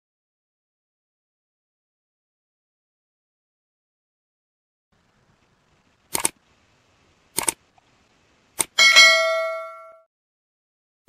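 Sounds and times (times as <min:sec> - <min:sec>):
mouse clicks: 0:06.1 - 0:06.4, 0:07.4 - 0:07.6
bell ding: 0:08.8 - 0:10.1.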